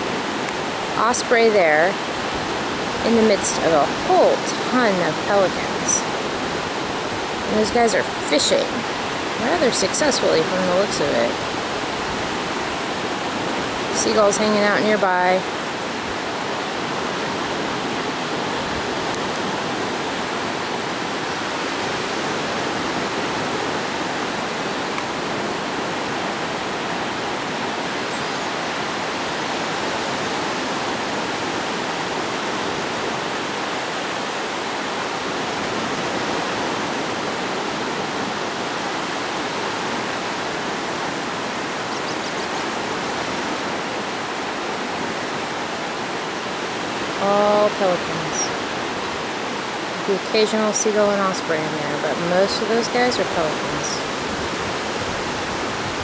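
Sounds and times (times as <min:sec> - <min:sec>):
ocean surf breaking on beach: 0:00.0 - 0:56.0.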